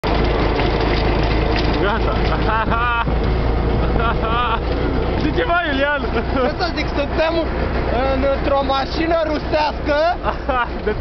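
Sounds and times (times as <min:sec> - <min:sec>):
low hum: 0:00.0 - 0:08.4
truck engine drone: 0:00.0 - 0:11.0.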